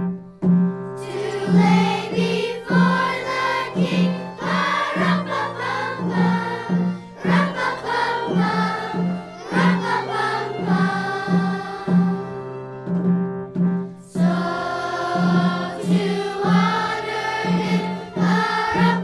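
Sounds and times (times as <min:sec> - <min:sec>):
children's choir singing: 0:01.0 - 0:12.8, 0:14.0 - 0:19.0.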